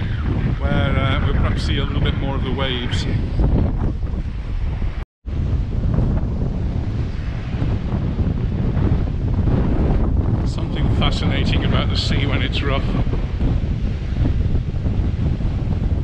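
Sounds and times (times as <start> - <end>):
surf washing: 0.0 - 16.0
wind buffeting microphone: 0.0 - 16.0.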